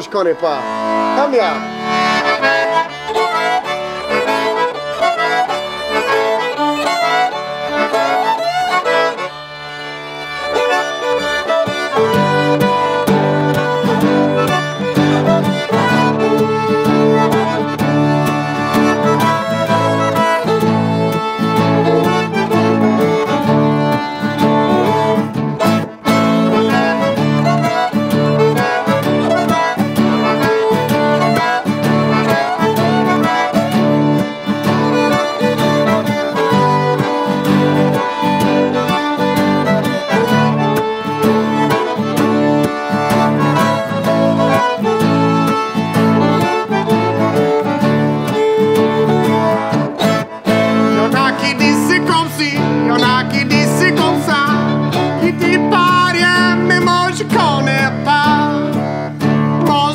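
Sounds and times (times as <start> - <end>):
acoustic guitars: 0.0 - 59.9
button accordion: 0.0 - 59.9
fiddle: 0.0 - 59.9.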